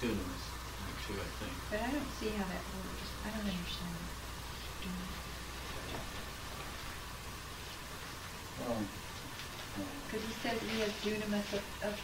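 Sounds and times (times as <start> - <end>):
videotape hiss: 0.0 - 12.0.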